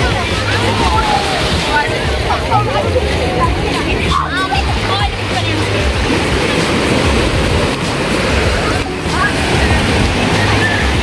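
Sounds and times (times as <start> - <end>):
surf washing on sand: 0.0 - 11.0
wind buffeting microphone: 0.0 - 11.0.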